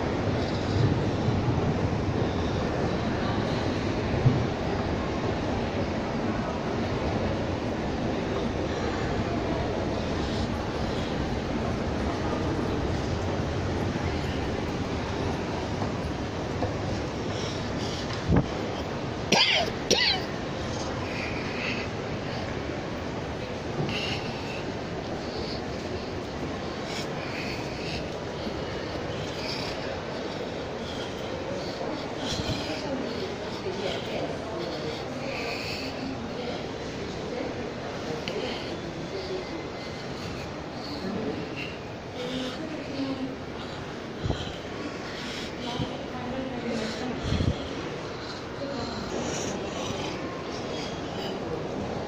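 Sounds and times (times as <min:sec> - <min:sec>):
shopping mall rushing hum: 0:00.0 - 0:52.0.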